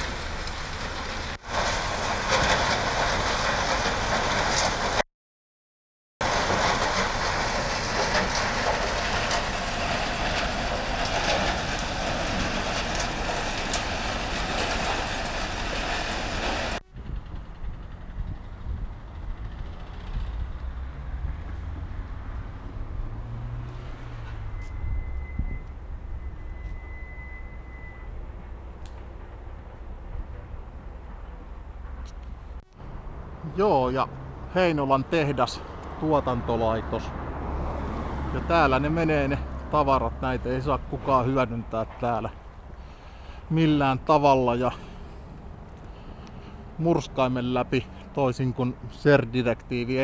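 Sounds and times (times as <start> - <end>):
loud machinery noise: 0.0 - 5.0, 6.2 - 23.1
low outdoor rumble: 0.0 - 5.0, 6.2 - 50.0.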